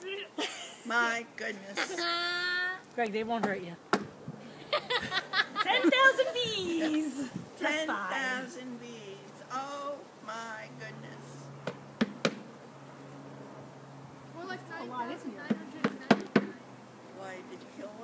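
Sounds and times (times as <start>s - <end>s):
knocking on wooden box: 11.7s - 12.4s, 15.5s - 16.6s.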